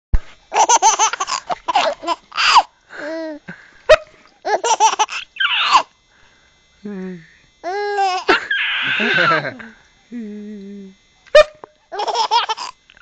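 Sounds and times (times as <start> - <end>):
baby giggling: 0.5 - 3.4, 4.4 - 5.9, 7.7 - 9.6, 11.9 - 12.8.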